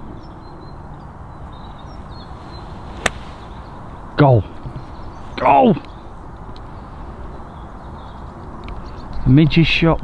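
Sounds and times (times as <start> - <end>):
golf club striking ball: 3.0 - 3.8.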